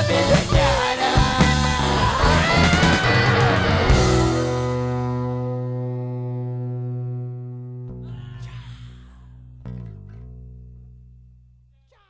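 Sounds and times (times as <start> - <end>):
punk rock guitar and bass chord: 0.0 - 8.3, 9.4 - 11.7
sharp guitar strike: 2.4 - 8.2.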